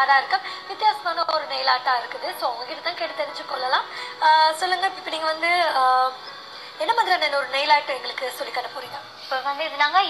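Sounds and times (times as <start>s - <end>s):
music playing: 0.0s - 10.0s
woman talking: 6.8s - 10.0s.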